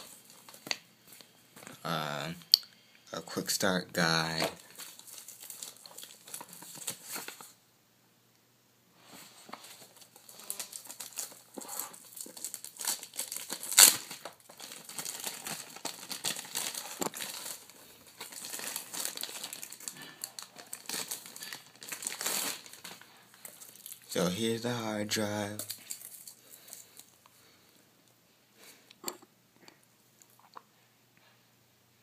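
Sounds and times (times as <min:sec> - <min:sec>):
plastic packaging crinkling: 0:00.0 - 0:01.8, 0:04.2 - 0:07.6, 0:09.6 - 0:24.3, 0:25.3 - 0:27.2.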